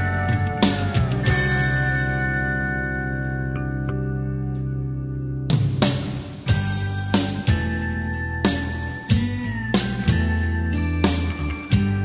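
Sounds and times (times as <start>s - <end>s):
country-rock band playing: 0.0s - 12.0s
guitar chord ringing: 0.0s - 12.0s.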